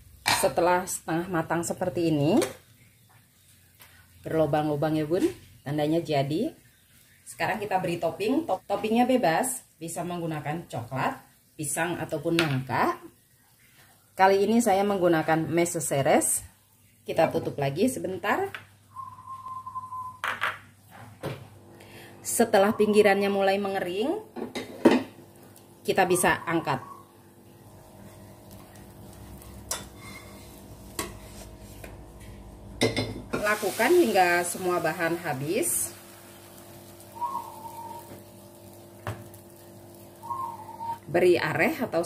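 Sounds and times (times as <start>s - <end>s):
short whistle-like tone: 18.9s - 20.2s
low steady hum: 21.4s - 42.0s.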